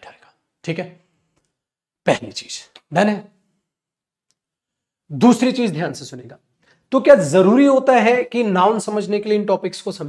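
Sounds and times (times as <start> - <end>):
man's voice: 2.0 - 3.4, 5.1 - 10.0.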